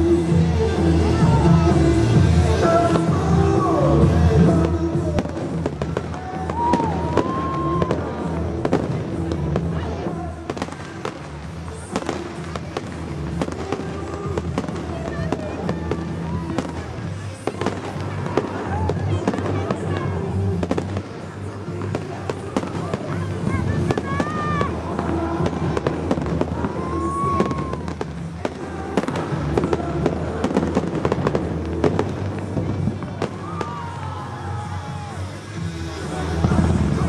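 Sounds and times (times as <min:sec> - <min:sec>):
fireworks bangs and crackles: 0:00.0 - 0:37.0
loud show music: 0:00.0 - 0:37.0.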